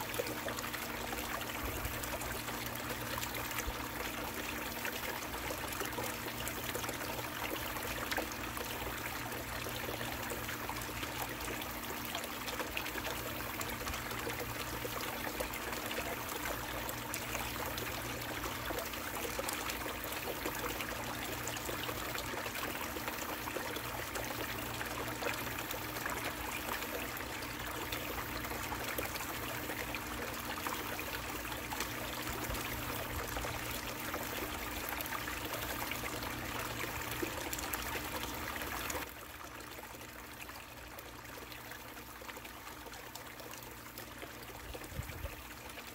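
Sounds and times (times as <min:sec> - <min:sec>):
water pouring into a tub: 0:00.0 - 0:45.9
water running down a sluice: 0:00.0 - 0:45.9.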